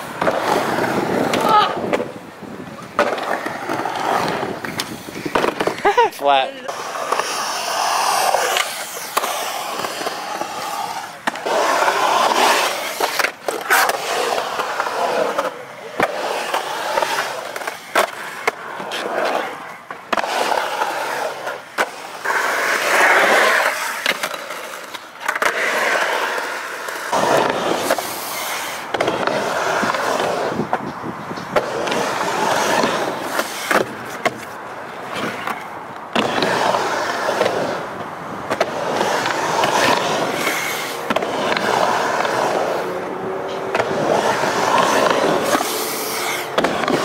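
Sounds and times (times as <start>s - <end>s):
skateboard clack: 0.0s - 47.0s
skateboard wheels rolling on concrete: 0.0s - 47.0s.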